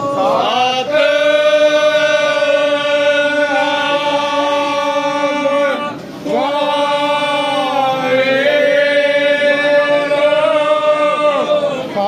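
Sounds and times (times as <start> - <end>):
devotional chanting: 0.0 - 12.0.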